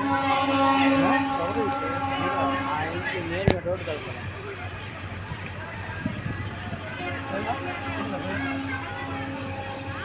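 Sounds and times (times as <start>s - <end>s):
indistinct voices talking: 0.0s - 10.0s
low steady hum: 0.0s - 10.0s
outdoor noise: 0.0s - 10.0s.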